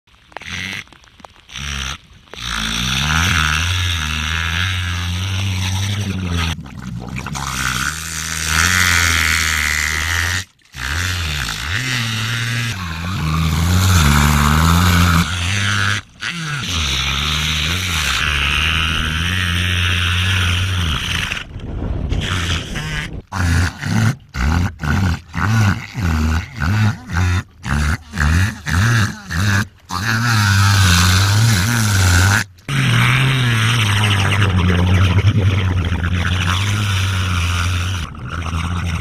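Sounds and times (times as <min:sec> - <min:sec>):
orca droning and pulsing: 0:29.0 - 0:39.0.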